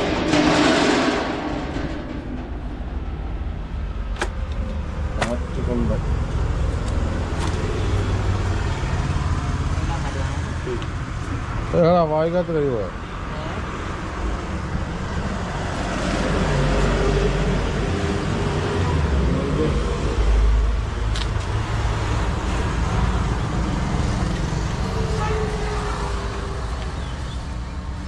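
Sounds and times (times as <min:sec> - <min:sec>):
road traffic passing: 0:00.0 - 0:28.0.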